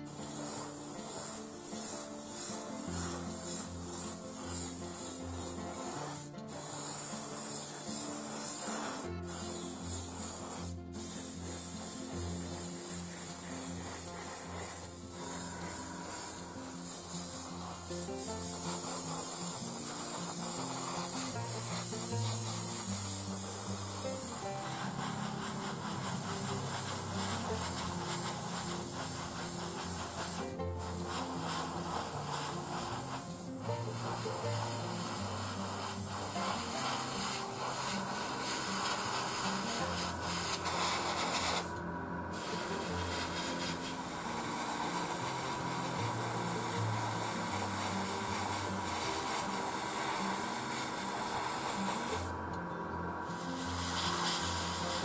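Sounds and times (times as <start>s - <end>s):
airbrush air hiss: 0.0s - 55.0s.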